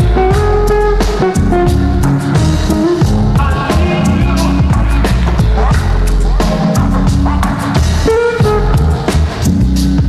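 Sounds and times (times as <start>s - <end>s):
vaporwave music: 0.0s - 10.0s.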